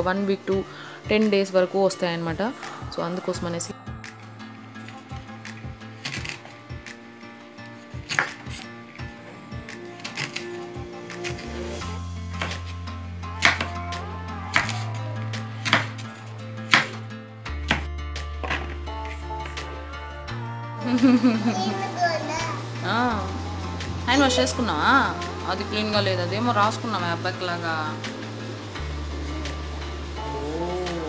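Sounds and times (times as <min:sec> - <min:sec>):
knife chopping on wooden board: 0:08.0 - 0:08.6, 0:12.4 - 0:12.7, 0:13.4 - 0:13.8, 0:14.6 - 0:14.8, 0:15.6 - 0:16.0, 0:16.7 - 0:17.0, 0:17.7 - 0:18.8
toddler calling out and babbling: 0:21.4 - 0:22.7.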